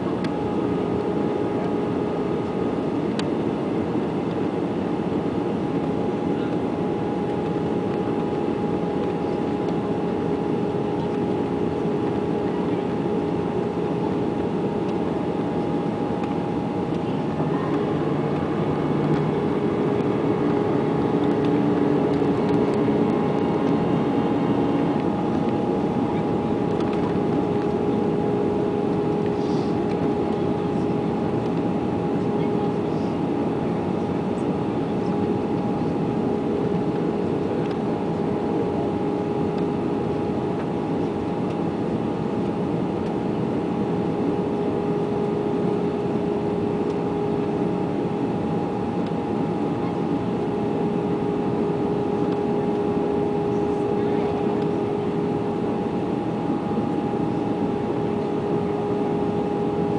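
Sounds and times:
aircraft cabin engine rush: 0.0 - 59.9
higher hum: 0.0 - 59.9
low hum: 0.0 - 59.9.

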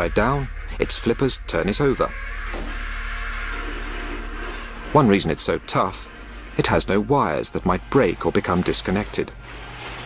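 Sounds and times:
low steady hum: 0.0 - 10.0
electric motors whirring: 2.1 - 10.0.

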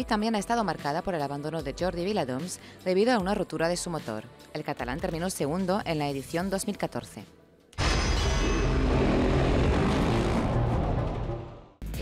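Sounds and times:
vehicle-like sound effect: 7.8 - 11.8.

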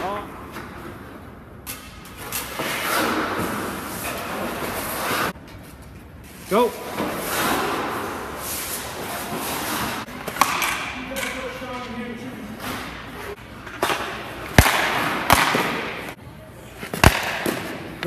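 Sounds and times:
skates scraping across ice: 2.2 - 5.4, 6.4 - 10.4
sharp cracks: 13.8 - 16.2, 17.0 - 18.0.

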